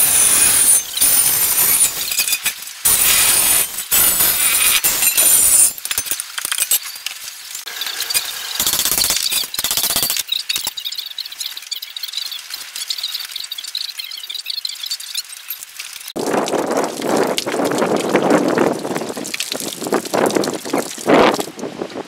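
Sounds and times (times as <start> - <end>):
angle grinder cutting steel: 0.0 - 5.9.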